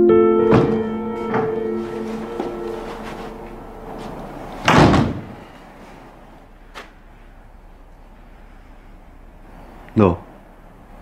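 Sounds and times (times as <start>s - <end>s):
wooden door banging shut: 0.4s - 1.6s, 4.6s - 5.4s.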